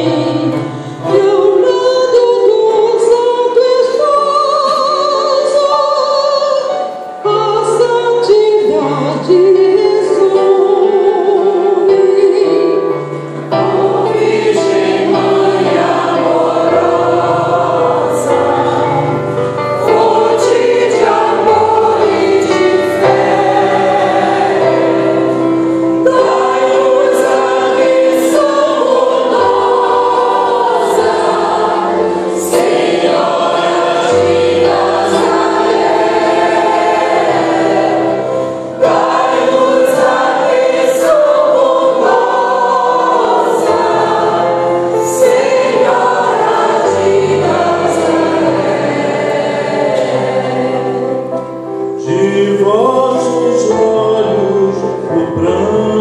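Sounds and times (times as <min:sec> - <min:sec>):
mixed choir singing a hymn: 0:00.0 - 0:56.0.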